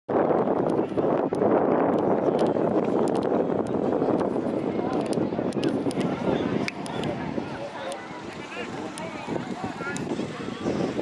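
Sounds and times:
wind rushing: 0:00.1 - 0:11.0.

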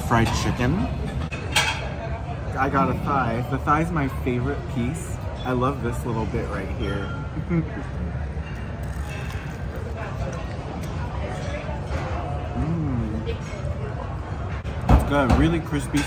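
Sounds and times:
indistinct chatter of diners: 0:00.0 - 0:16.0.

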